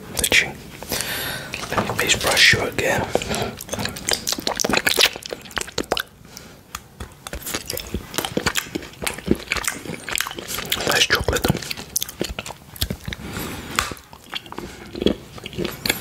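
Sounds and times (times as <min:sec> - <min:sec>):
chocolate bar chewing: 0:00.2 - 0:16.0
wet mouth sounds: 0:00.2 - 0:16.0.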